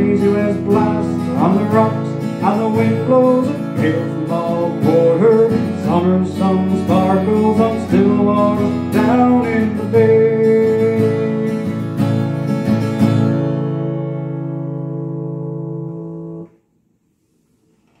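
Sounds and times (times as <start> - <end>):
acoustic guitar strummed chords: 0.0 - 16.6.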